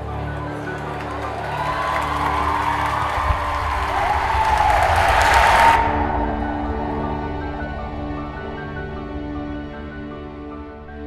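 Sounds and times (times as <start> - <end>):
audience applauding and cheering: 0.0 - 9.2
music: 0.0 - 11.0.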